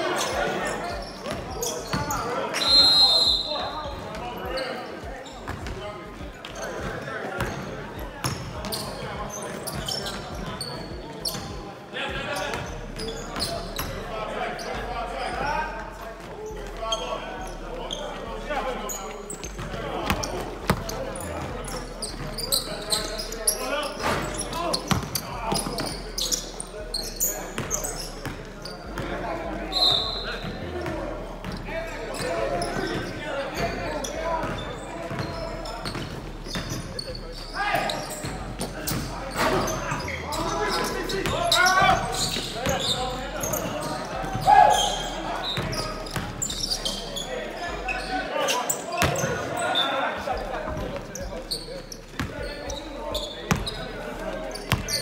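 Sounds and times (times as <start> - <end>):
players' voices and chatter: 0.0 - 55.0.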